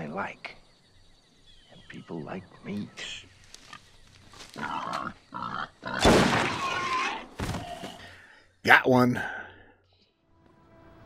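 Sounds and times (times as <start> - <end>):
wild boar grunting: 4.5 - 6.1.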